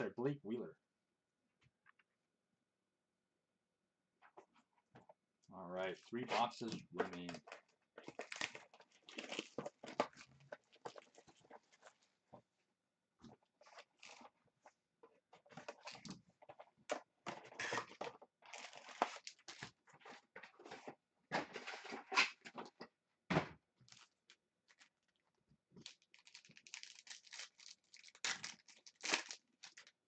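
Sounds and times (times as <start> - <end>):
plastic wrapper crinkling and tearing: 6.3 - 12.2, 13.6 - 14.4, 17.4 - 20.5, 23.8 - 30.0.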